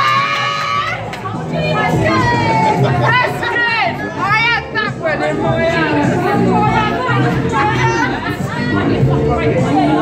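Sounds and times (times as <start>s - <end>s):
background music: 0.0s - 10.0s
people chattering: 1.0s - 10.0s.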